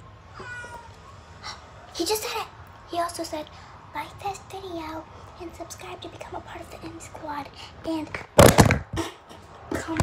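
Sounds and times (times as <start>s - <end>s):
cat meowing: 0.3s - 1.2s.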